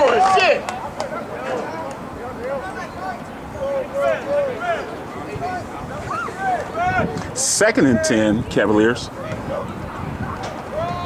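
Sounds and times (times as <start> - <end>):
background murmur: 0.0 - 11.0
distant voices shouting: 0.0 - 11.0.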